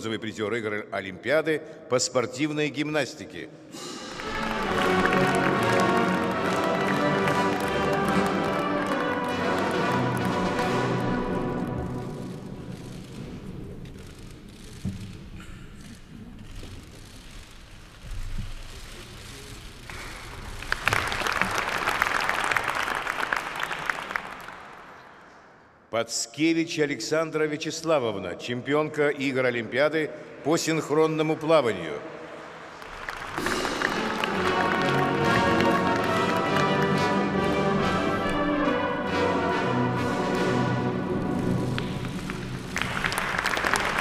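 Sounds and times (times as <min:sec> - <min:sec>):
ceremonial music with chords: 0:03.8 - 0:14.4, 0:33.3 - 0:44.0
audience applause: 0:04.0 - 0:12.9, 0:19.8 - 0:25.2, 0:32.2 - 0:44.0.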